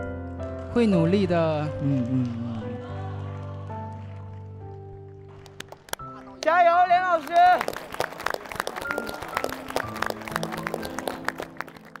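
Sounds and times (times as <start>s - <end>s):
background music with held notes: 0.0s - 12.0s
hand clapping: 7.2s - 12.0s.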